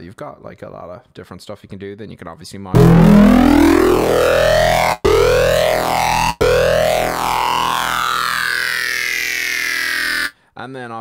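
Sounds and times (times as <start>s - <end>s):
distorted synthesizer note: 2.8s - 10.3s.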